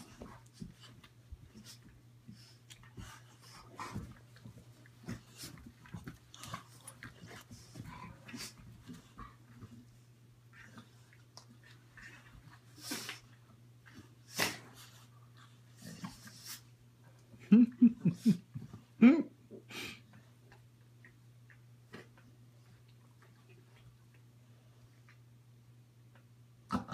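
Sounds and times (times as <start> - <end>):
dogs breathing and snuffling: 0.0 - 17.3.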